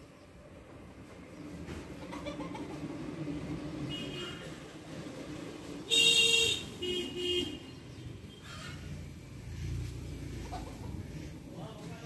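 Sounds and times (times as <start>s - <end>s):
horn blasts: 5.9s - 7.7s.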